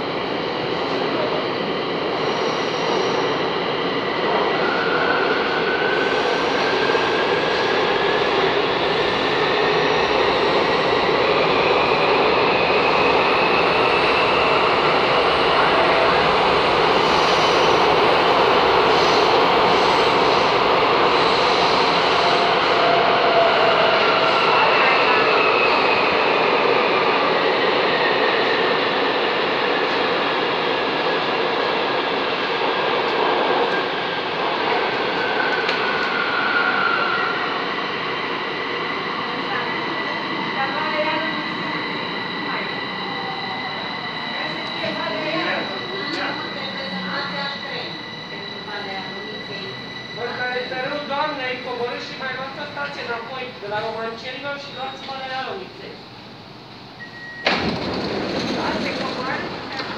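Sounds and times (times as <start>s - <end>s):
train wheels rushing in tunnel: 0.0s - 59.9s.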